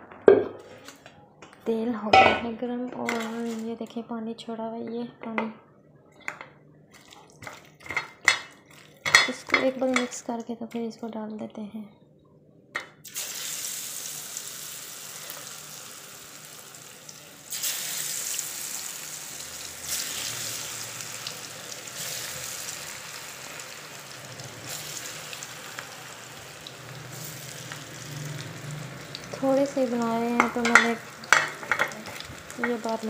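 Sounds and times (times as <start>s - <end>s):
food deep-frying in oil: 13.0s - 33.0s.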